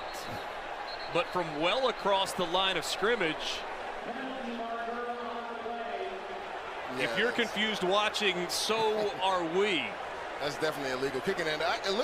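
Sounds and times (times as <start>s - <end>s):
stadium background noise: 0.0s - 12.0s.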